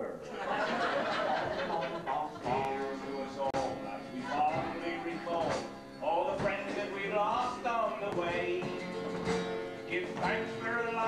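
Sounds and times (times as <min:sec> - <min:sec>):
acoustic guitar: 0:00.0 - 0:11.0
male group singing: 0:01.5 - 0:08.7.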